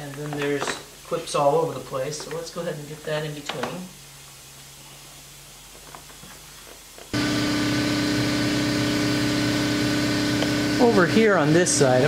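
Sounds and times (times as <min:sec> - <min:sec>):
faint room hum: 0:00.0 - 0:07.2
loud mechanical hum: 0:07.1 - 0:12.0.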